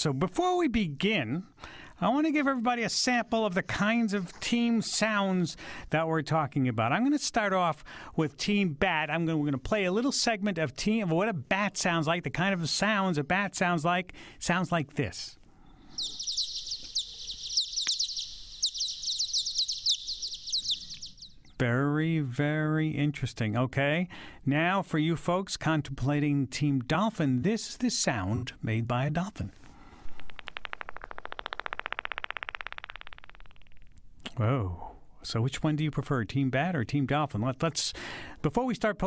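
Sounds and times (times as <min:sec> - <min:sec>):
slowed bat chirps: 0:15.6 - 0:21.6, 0:30.0 - 0:34.1
dolphin echolocation clicks: 0:16.0 - 0:19.6, 0:30.1 - 0:34.1.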